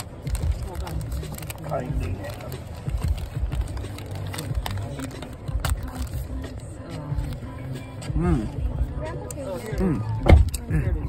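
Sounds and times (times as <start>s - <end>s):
faint music: 0.0s - 11.0s
muffled voices: 0.0s - 11.0s.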